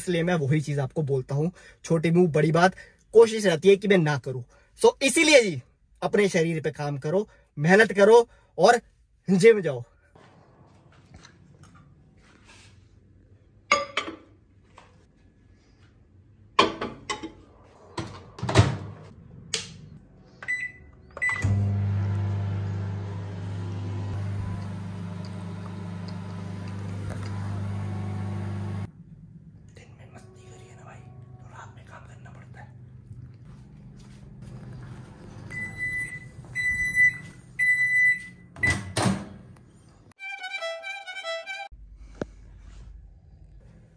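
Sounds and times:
microwave oven humming: 0:20.5 - 0:31.6, 0:32.7 - 0:39.0.

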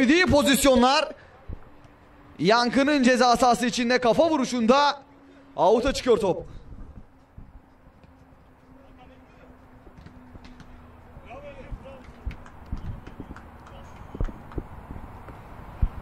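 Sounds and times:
football knocks and thumps: 0:09.9 - 0:10.8.

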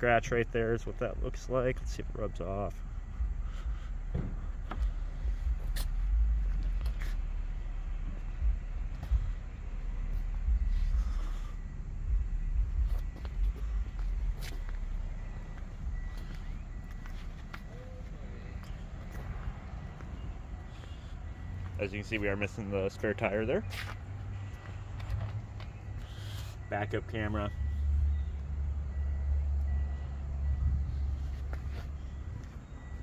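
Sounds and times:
footsteps on pavement: 0:03.2 - 0:11.5, 0:12.1 - 0:26.6, 0:30.9 - 0:33.0.

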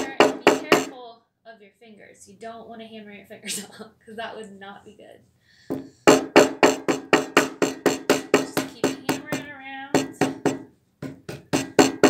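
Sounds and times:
hammer striking chalk on table: 0:00.0 - 0:00.9, 0:05.7 - 0:12.0.

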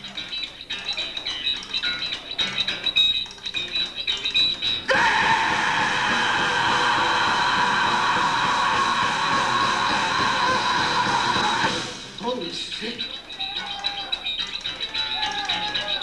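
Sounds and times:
live rock band playing: 0:04.8 - 0:12.2.

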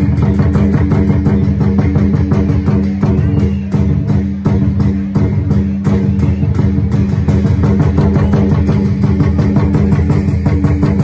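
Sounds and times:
drums and cymbals beat: 0:00.0 - 0:11.0.

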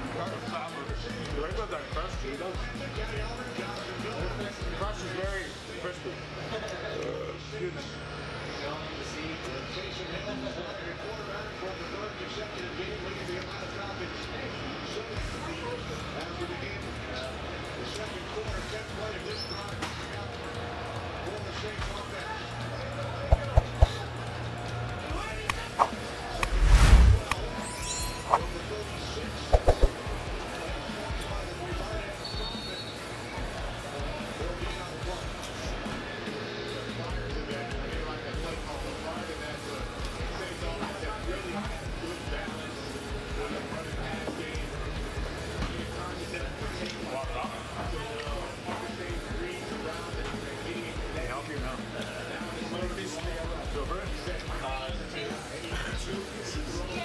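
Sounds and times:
restaurant room noise: 0:00.0 - 0:57.0.

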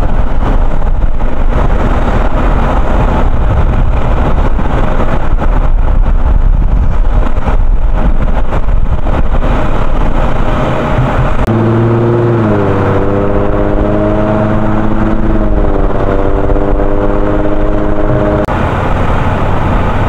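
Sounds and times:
loud engine noise: 0:00.0 - 0:20.0.

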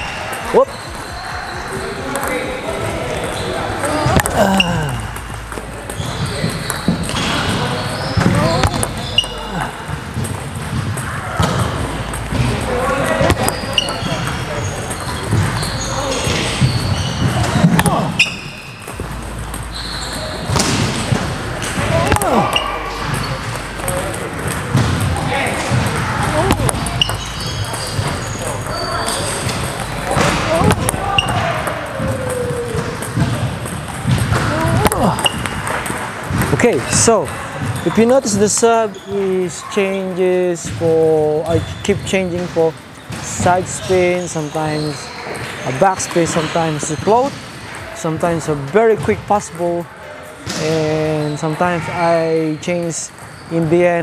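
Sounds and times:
voices talking in a hall: 0:00.0 - 0:54.0.

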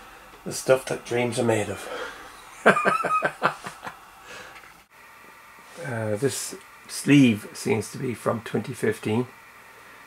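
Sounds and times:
man chuckling: 0:02.5 - 0:04.0.

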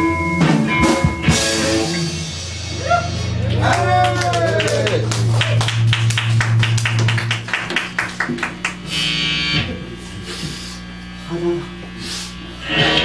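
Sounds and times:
small guitar and room sounds: 0:00.0 - 0:10.5, 0:11.2 - 0:13.0
electric guitar held low note: 0:00.0 - 0:13.0
rapid drum hits: 0:00.9 - 0:08.8.

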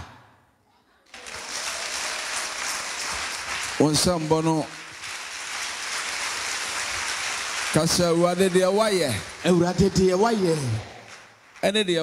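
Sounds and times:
crowd clapping: 0:01.1 - 0:12.0.

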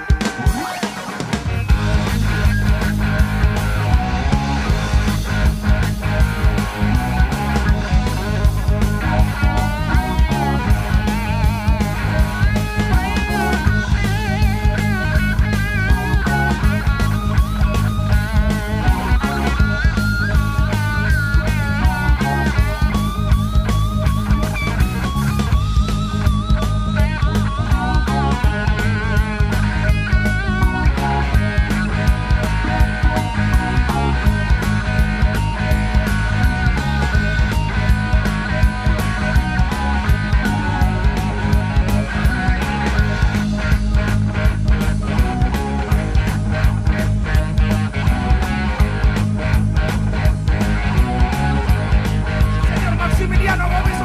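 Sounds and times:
keyboard: 0:00.0 - 0:54.0
lead electric guitar: 0:00.0 - 0:54.0
steady drum beat: 0:00.0 - 0:54.0.

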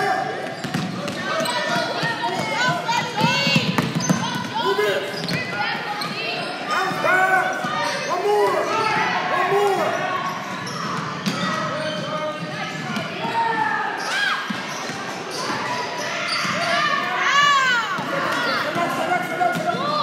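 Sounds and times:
sneaker squeaks: 0:00.0 - 0:09.0, 0:10.1 - 0:20.0
voices in echoing gym: 0:00.0 - 0:20.0.

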